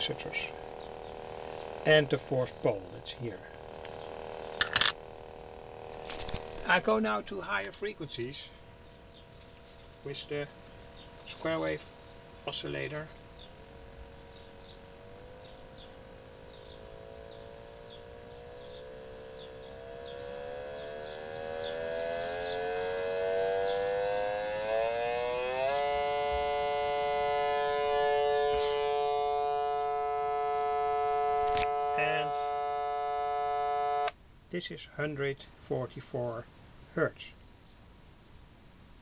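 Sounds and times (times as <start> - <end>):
rising electronic tone: 0.0 - 34.2.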